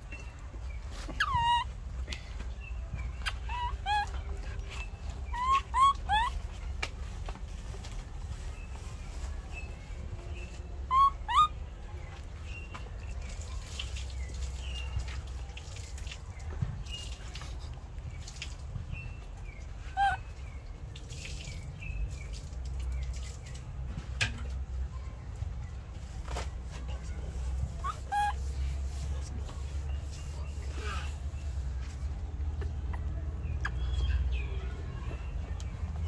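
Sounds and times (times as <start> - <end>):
monkey squeaking calls: 0.0 - 1.8, 2.6 - 6.7, 10.8 - 11.7, 19.5 - 20.4, 27.6 - 29.2, 32.6 - 34.4
pitched animal call: 1.1 - 1.7, 3.2 - 4.3, 5.3 - 6.4, 10.9 - 11.6, 27.8 - 28.5.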